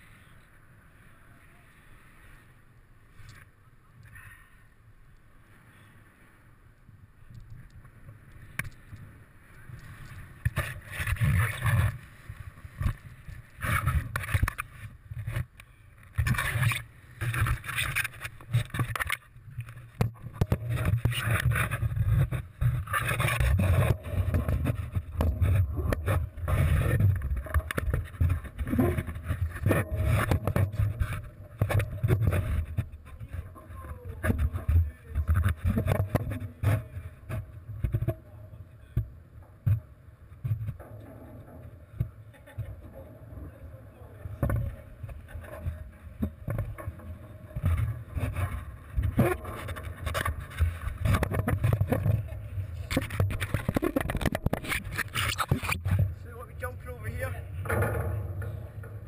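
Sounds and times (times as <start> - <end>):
wind rumbling on microphone: 6.8 - 59.0.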